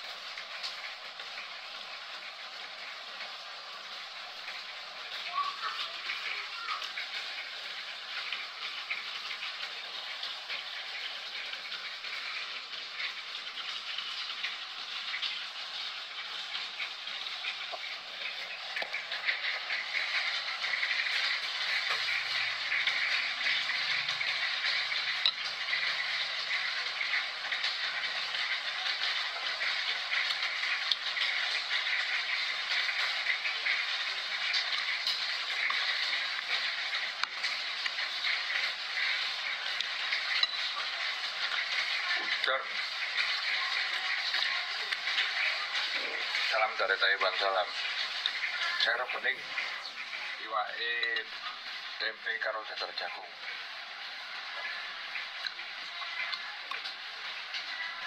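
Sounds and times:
steady rain hiss: 0.0 - 58.0.

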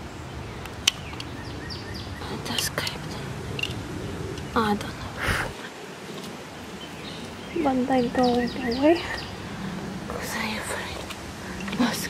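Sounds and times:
low outdoor background noise: 0.0 - 12.0
person whispering: 10.1 - 12.0.

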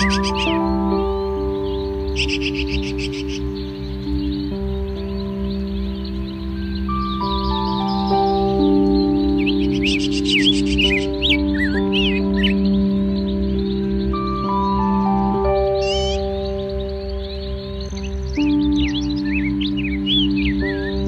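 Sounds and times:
birds chirping and twittering: 0.0 - 21.0
slow background music: 0.0 - 21.0.

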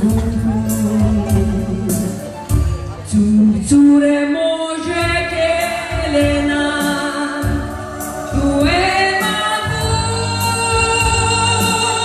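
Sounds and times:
woman singing into microphone: 0.0 - 2.3, 3.0 - 12.0
low musical accompaniment: 0.0 - 12.0.

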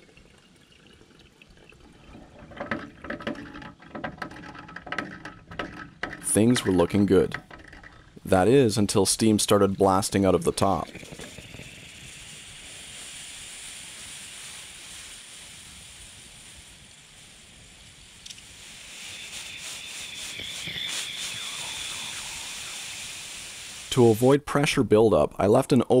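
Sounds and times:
steam hissing from a vent: 2.2 - 24.4
faint high whistle: 18.9 - 23.6.

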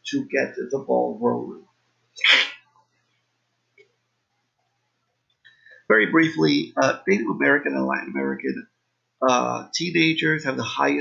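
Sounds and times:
man sneezing: 2.2 - 2.6.

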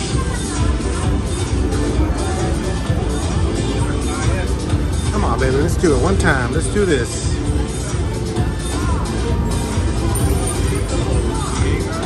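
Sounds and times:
casino background noise: 0.0 - 12.0
slot machine game music: 9.4 - 11.3.

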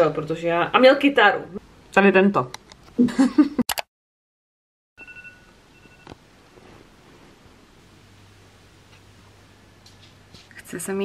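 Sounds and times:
smartphone alarm beeps: 5.0 - 6.2
faint room noise: 5.0 - 11.0.

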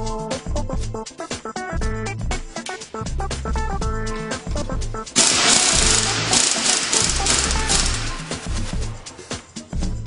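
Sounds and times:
pneumatic impact wrench rattling: 5.2 - 9.3.

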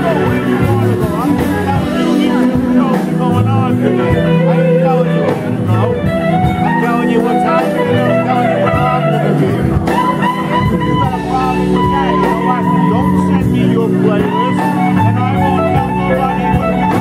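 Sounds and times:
electric guitar lead bending notes: 0.0 - 17.0
live blues band playing: 0.0 - 17.0.

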